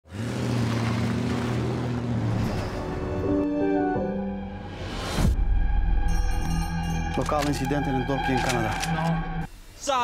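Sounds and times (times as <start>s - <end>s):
road noise: 0.0s - 5.3s.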